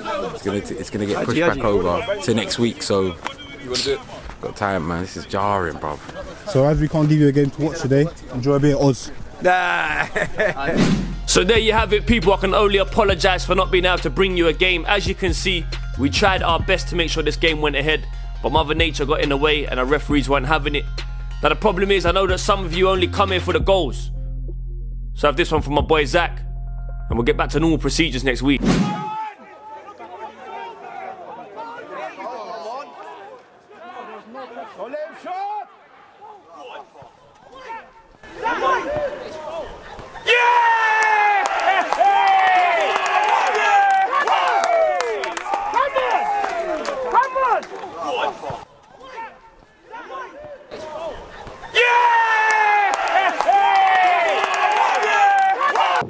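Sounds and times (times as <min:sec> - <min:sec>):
men yelling: 0:09.4 - 0:10.6, 0:29.0 - 0:56.0
players shouting to each other: 0:28.8 - 0:56.0.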